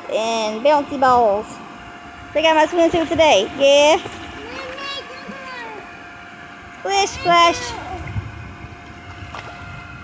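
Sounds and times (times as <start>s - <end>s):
wind rumbling on microphone: 7.1s - 10.0s.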